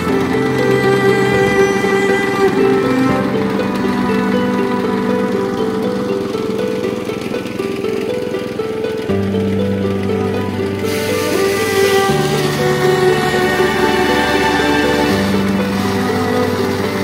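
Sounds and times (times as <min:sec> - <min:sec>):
background music melody: 0:00.0 - 0:17.0.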